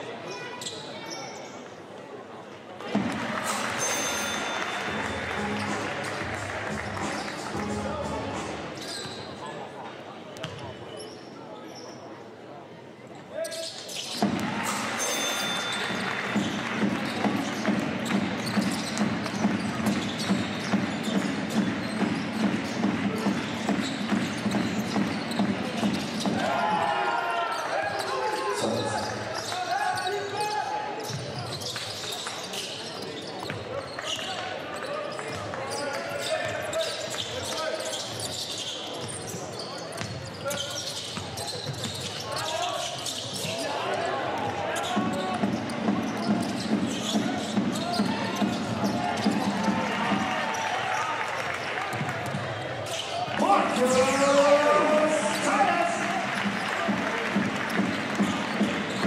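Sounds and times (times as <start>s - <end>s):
crowd noise with steady beat: 0.0s - 59.0s.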